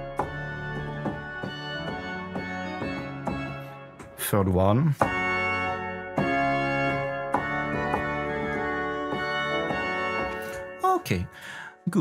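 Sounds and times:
pipe organ playing sustained chords: 0:00.0 - 0:11.5.

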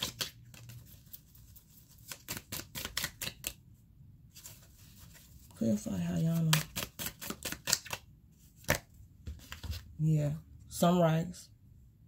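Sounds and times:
cards clicking: 0:02.0 - 0:03.6, 0:06.4 - 0:08.0.

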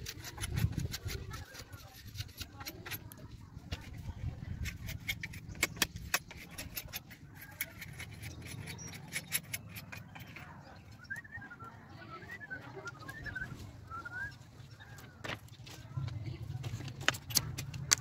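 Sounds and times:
blade splitting bamboo: 0:00.0 - 0:10.4
bird chirping: 0:07.4 - 0:15.6.

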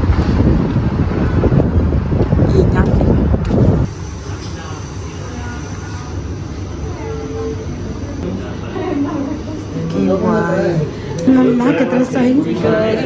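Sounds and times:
wind rumble on microphone: 0:00.0 - 0:03.9
thin steady high whine: 0:03.5 - 0:13.0.

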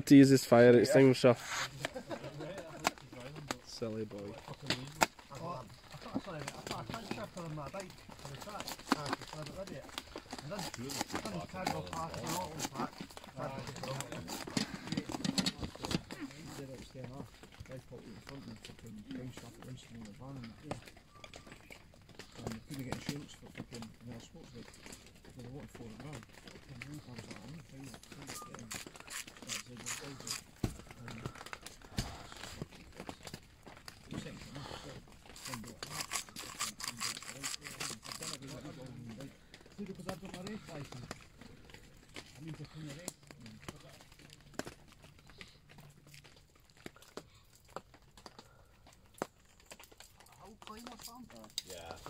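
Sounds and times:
sharp clicks and crackles: 0:01.4 - 0:52.0.

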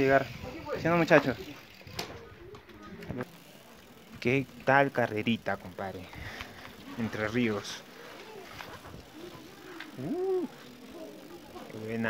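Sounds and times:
quiet outdoor ambience: 0:00.0 - 0:12.0
faint background voices: 0:07.8 - 0:11.8.

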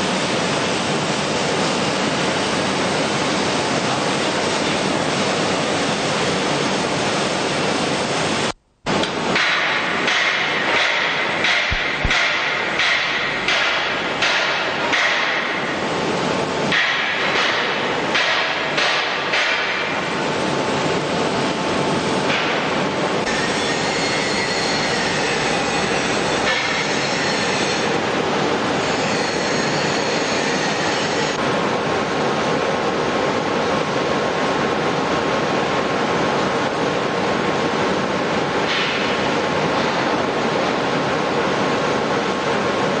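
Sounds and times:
industrial machinery noise: 0:00.0 - 0:43.0
sharp metallic knocks: 0:09.4 - 0:15.7, 0:16.7 - 0:20.0.

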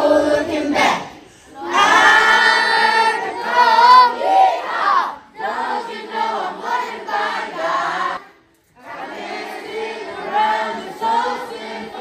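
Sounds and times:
children and adults singing: 0:00.0 - 0:12.0.

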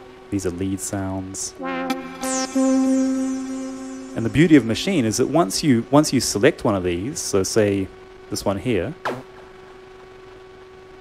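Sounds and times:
faint steady hum: 0:00.0 - 0:11.0
background hiss: 0:00.2 - 0:09.0
person speaking: 0:04.2 - 0:07.9.

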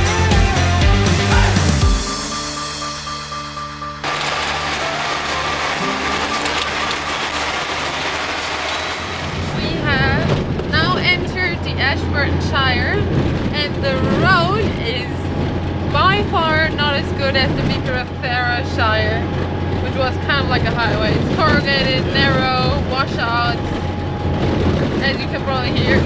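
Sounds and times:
low engine drone: 0:01.6 - 0:26.0
rattle on washboard gravel road: 0:04.0 - 0:26.0
woman speaking: 0:09.6 - 0:15.3, 0:16.0 - 0:23.8, 0:25.0 - 0:26.0.

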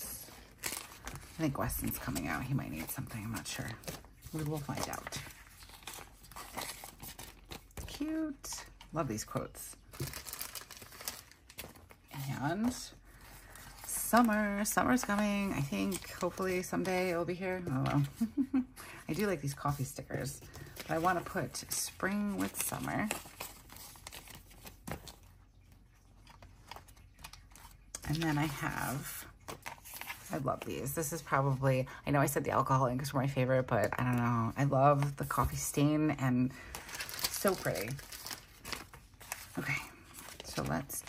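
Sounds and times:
paper and plastic sleeve rustling: 0:00.0 - 0:31.6, 0:36.5 - 0:41.0
paper sheets rustling: 0:36.6 - 0:41.0.

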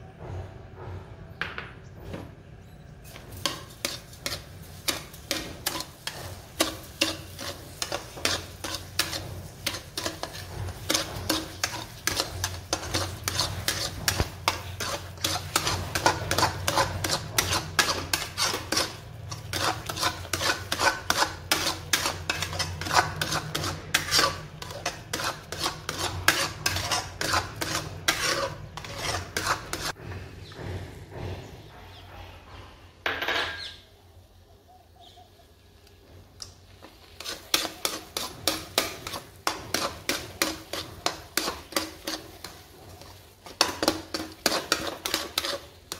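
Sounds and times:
metal spatula scraping pan: 0:03.1 - 0:30.0, 0:36.7 - 0:45.9.

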